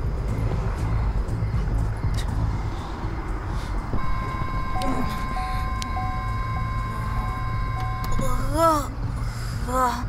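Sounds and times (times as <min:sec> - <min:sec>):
low steady rumble: 0:00.0 - 0:10.0
soft background music: 0:00.0 - 0:10.0.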